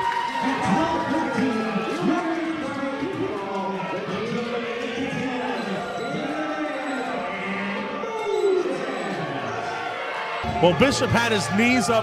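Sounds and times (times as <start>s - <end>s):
crowd shouting and chanting: 0.0s - 12.0s.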